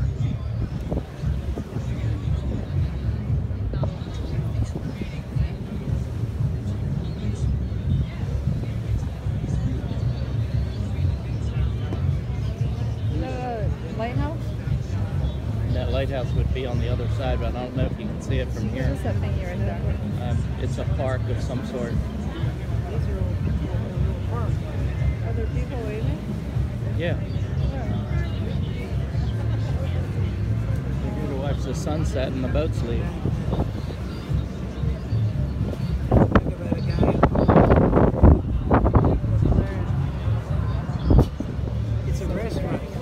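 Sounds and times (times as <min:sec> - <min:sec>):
faint music: 0:00.0 - 0:43.0
people talking: 0:00.0 - 0:43.0
steady low rumble: 0:00.0 - 0:43.0.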